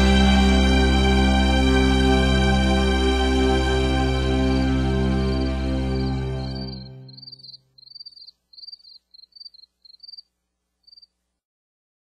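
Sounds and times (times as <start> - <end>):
song: 0.0 - 7.4
cricket chirps: 6.4 - 11.1.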